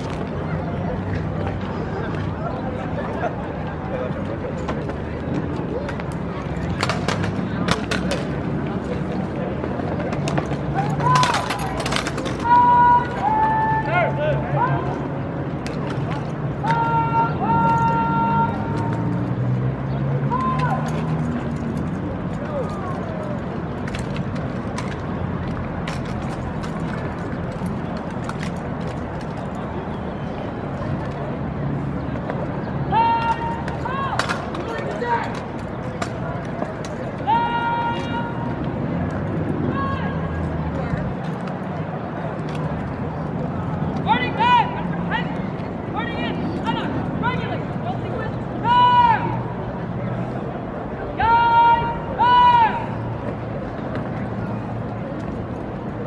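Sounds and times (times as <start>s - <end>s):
murmur of spectators: 0.0s - 56.0s
rifles clacking and slapping: 10.0s - 12.6s, 20.5s - 29.7s.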